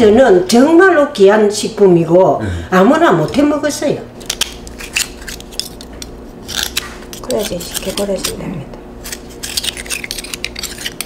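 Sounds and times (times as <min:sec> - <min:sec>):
knife scraping clam shell: 0:04.2 - 0:11.0.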